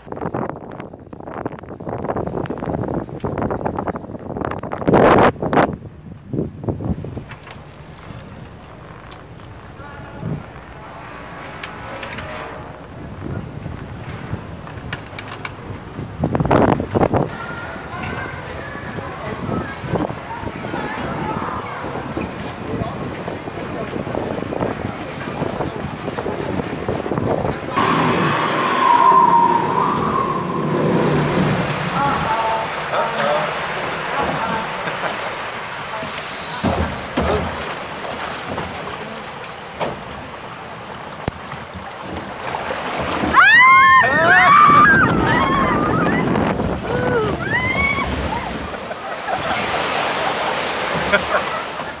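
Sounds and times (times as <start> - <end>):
wind buffeting microphone: 0.0 - 39.0, 40.2 - 52.0
low ride machinery rumble: 0.0 - 42.4, 43.3 - 52.0
rushing water: 0.0 - 52.0
theme park crowd bustle: 6.8 - 52.0
riders screaming and yelling: 27.7 - 33.2, 43.2 - 49.9
steady machine whine: 27.7 - 33.2.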